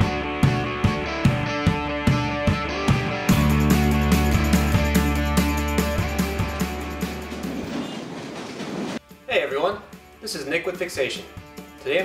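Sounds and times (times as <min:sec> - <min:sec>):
music: 0:00.0 - 0:07.8, 0:09.0 - 0:12.0
train on steel elevated track: 0:05.9 - 0:09.0.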